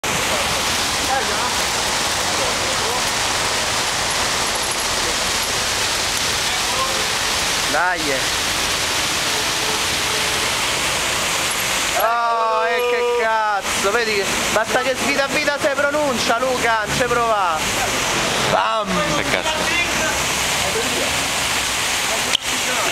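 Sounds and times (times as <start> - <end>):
fountain water splashing: 0.0 - 22.9.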